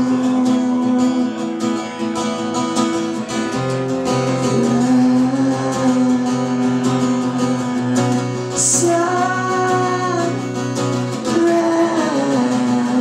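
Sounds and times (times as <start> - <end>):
man singing: 0.0 - 2.2, 4.1 - 13.0
strummed acoustic guitar: 0.0 - 13.0.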